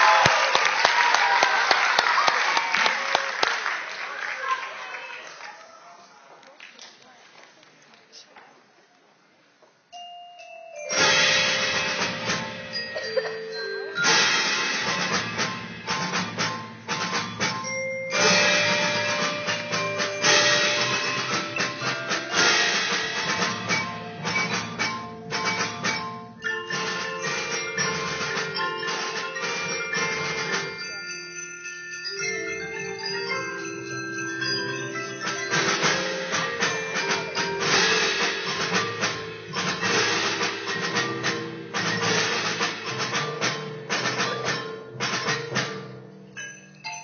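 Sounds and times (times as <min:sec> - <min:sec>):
marimba ensemble playing: 0:09.9 - 0:47.0.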